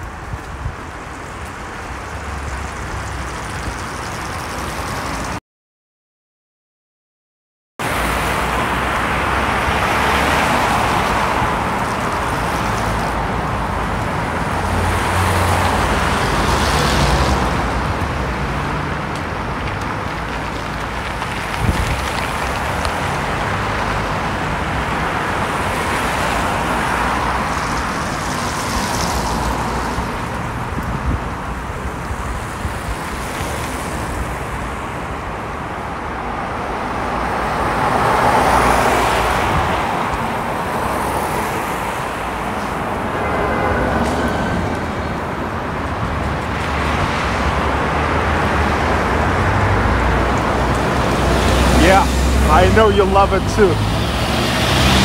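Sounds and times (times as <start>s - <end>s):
cars driving past: 0.0s - 5.4s, 7.8s - 55.0s.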